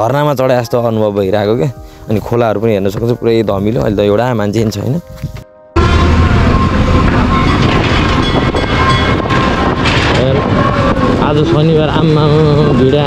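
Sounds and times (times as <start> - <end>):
road and wind noise: 1.8 - 13.0
man's voice: 10.1 - 13.0.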